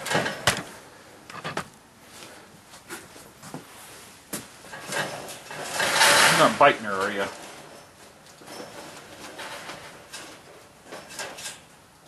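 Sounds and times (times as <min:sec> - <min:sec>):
wire cage rattling and rustling: 0:00.0 - 0:00.8, 0:04.6 - 0:11.9.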